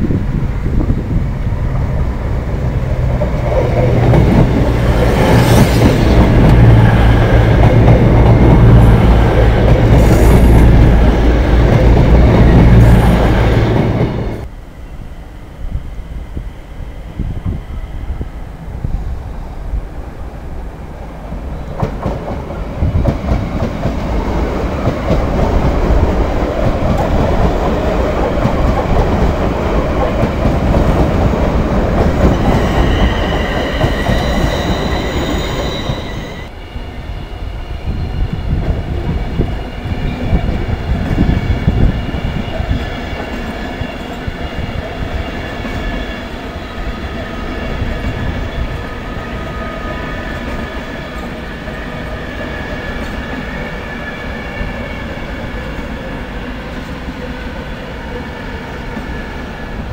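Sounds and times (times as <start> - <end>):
train rumbling past: 0.0 - 59.9
high squealing train wheels: 0.1 - 19.8, 21.2 - 59.9.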